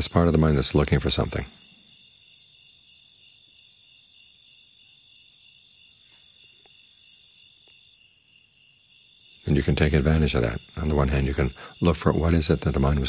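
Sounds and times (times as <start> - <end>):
crickets chirring: 0.0 - 13.0.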